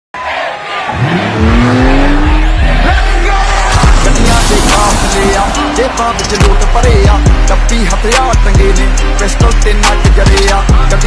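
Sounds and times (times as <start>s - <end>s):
crowd and loudspeaker din: 0.8s - 11.0s
rising pitched tone: 1.4s - 7.6s.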